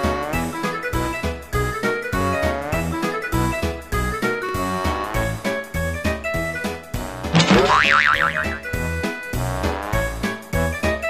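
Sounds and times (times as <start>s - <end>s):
cartoon boing sound effect: 7.4s - 8.9s
comic background music: 7.4s - 8.9s.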